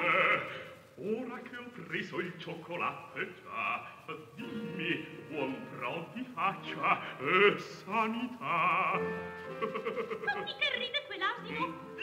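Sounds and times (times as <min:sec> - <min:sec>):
opera singer with vibrato: 0:00.0 - 0:01.4, 0:02.0 - 0:12.0.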